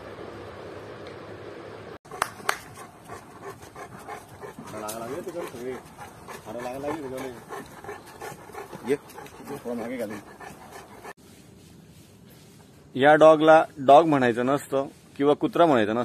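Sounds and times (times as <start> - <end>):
dog panting: 2.1 - 11.2
person talking: 4.6 - 7.7, 8.6 - 10.4.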